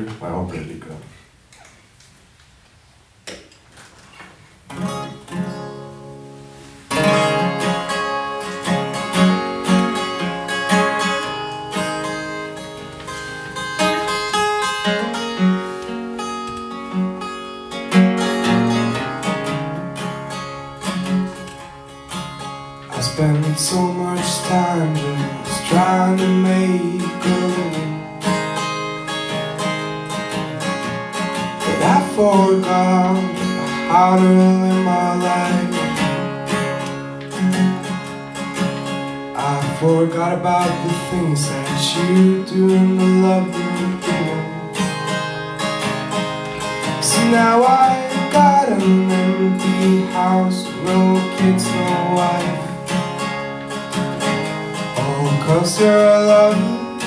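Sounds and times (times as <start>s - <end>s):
acoustic guitar strummed and picked: 3.3s - 57.0s.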